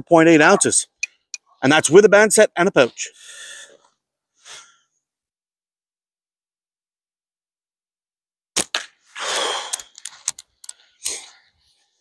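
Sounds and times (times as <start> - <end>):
small clicks of pouch handling: 9.7 - 11.2.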